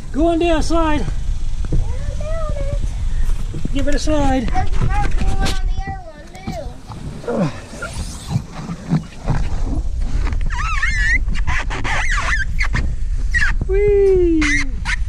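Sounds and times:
wind rumble on microphone: 0.0 - 15.0
small child squealing: 10.5 - 11.2.

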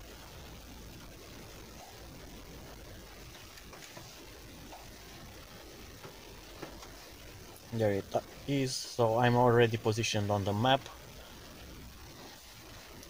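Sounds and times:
rain on car roof: 0.0 - 13.0.

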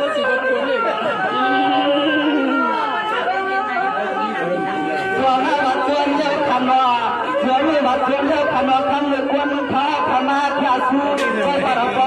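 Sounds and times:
background music with held notes: 0.0 - 12.0
people talking: 0.0 - 12.0.

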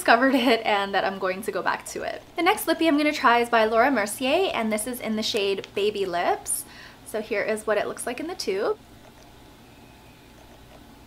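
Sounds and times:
low hiss: 0.0 - 11.0.

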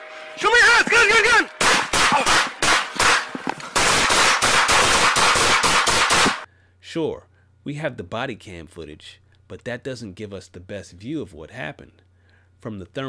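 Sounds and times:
man shouting: 0.4 - 2.5
rapid gunshots: 1.6 - 6.5.

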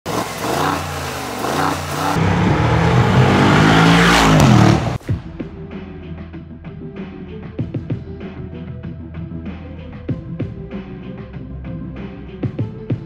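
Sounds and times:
car exhaust revving: 0.0 - 5.2
music with a beat: 5.0 - 13.0.

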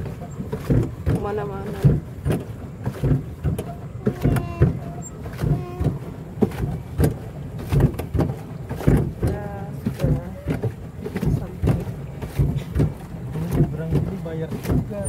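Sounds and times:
low knocks and rumble on boat: 0.0 - 15.0
people talking: 1.2 - 2.0, 4.0 - 4.8, 5.4 - 5.9, 9.2 - 12.0, 13.3 - 15.0.

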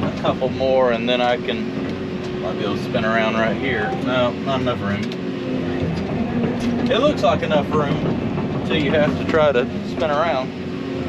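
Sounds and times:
diesel engine humming: 0.0 - 11.0.

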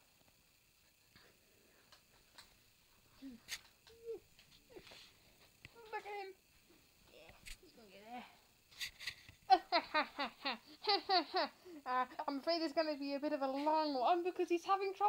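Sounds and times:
person laughing: 9.5 - 11.9.

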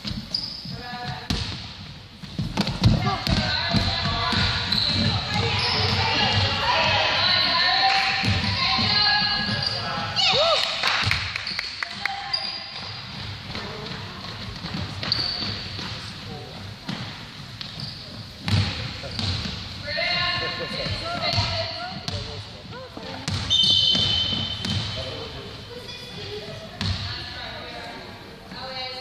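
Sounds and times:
sneakers squeaking: 0.0 - 29.0
basketball bouncing on hardwood floor: 1.0 - 1.7, 2.3 - 6.6, 18.4 - 19.6, 20.8 - 22.3, 23.2 - 24.9, 26.8 - 27.1.

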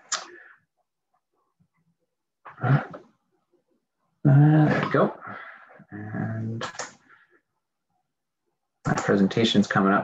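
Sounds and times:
man saying uh: 5.9 - 6.7.

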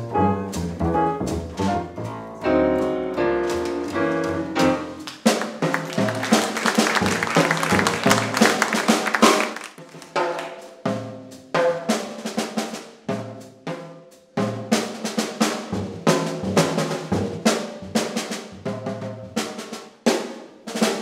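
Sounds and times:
upright bass: 0.0 - 8.6
band accented notes: 0.0 - 10.4
snare drum rolls: 2.8 - 13.0, 14.6 - 21.0.

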